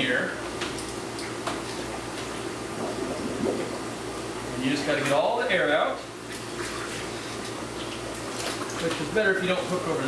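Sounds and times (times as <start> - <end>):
background hum: 0.0 - 10.0
water sloshing: 2.6 - 4.2.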